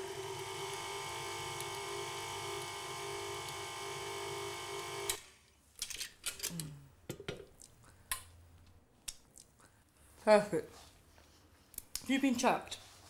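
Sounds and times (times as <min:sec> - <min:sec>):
electric mixer motor running: 0:00.0 - 0:05.2.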